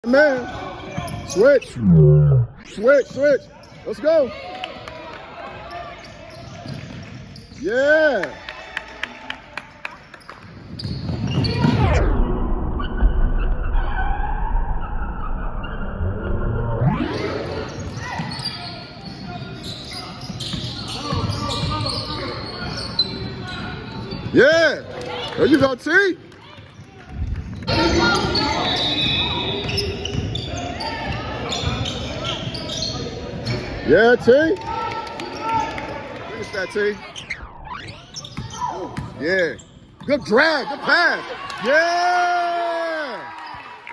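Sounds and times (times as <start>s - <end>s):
voices echoing in gym: 0.0s - 11.9s, 17.0s - 43.9s
court noise: 0.0s - 12.1s, 16.8s - 43.9s
sneakers squeaking on hardwood: 5.7s - 7.6s, 10.5s - 11.7s, 17.7s - 24.4s, 27.9s - 33.7s, 37.8s - 40.3s.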